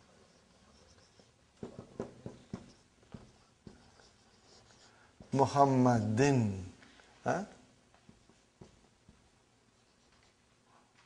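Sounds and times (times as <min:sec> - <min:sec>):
marker writing on whiteboard: 0:00.0 - 0:05.5.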